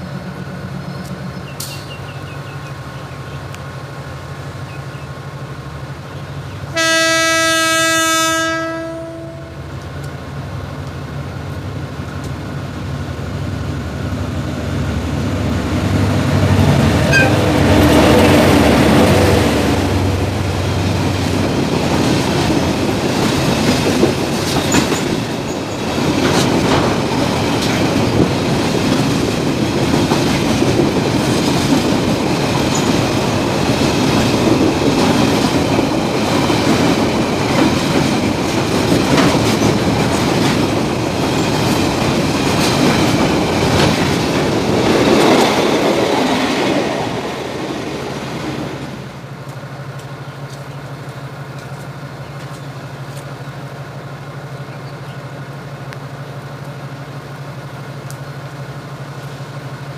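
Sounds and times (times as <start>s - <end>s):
diesel locomotive idling: 0.0s - 59.9s
wheels clicking over rail joints: 20.7s - 47.5s, 49.2s - 59.9s.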